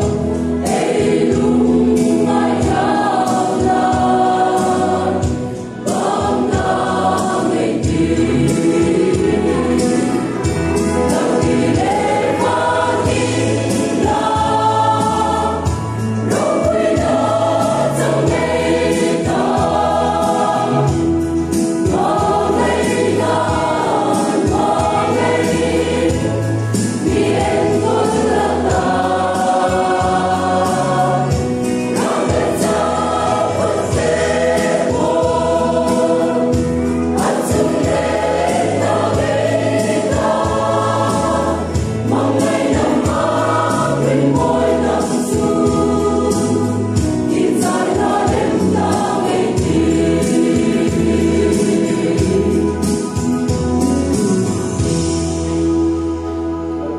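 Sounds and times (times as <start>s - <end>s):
mixed choir singing a hymn: 0.0s - 55.4s.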